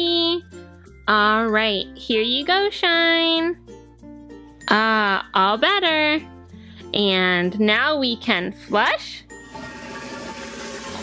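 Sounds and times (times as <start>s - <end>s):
toilet flush water rushing: 9.4s - 11.0s.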